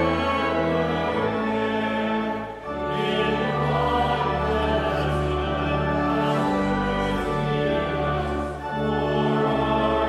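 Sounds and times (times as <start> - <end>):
held accompanying chords: 0.0 - 10.0
voices singing a hymn: 0.0 - 10.0.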